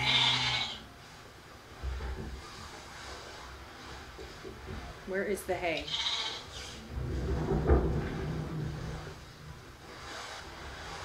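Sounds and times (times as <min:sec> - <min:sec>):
sheep bleating: 0:00.0 - 0:00.8, 0:05.9 - 0:06.5.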